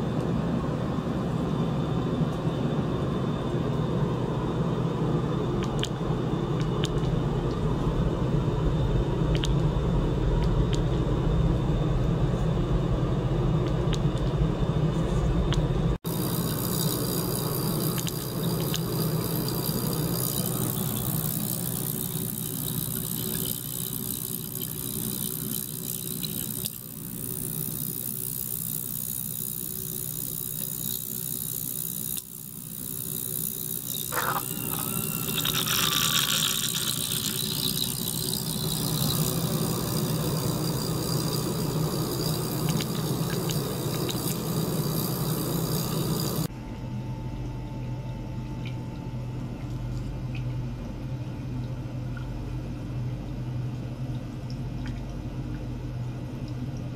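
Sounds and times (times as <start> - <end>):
ultrasonic cleaner buzzing hum: 0.0 - 53.7
water hissing: 34.0 - 38.9.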